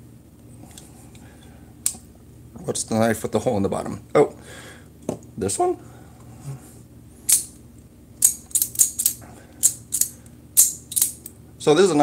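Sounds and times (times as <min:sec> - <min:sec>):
folding knife metallic clicks: 0:08.2 - 0:11.3.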